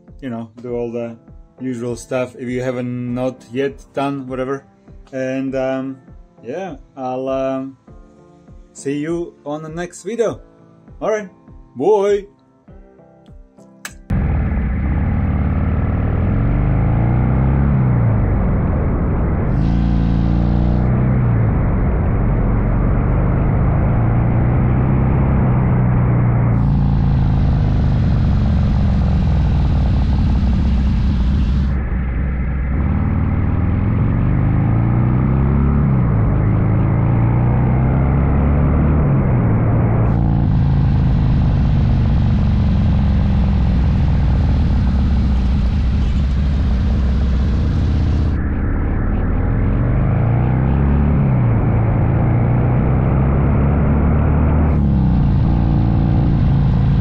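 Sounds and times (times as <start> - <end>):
motorcycle engine accelerating: 14.1 - 57.0.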